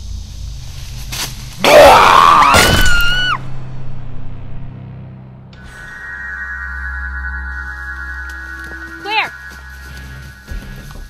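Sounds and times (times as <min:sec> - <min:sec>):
high-pitched human scream: 0:01.6 - 0:03.4.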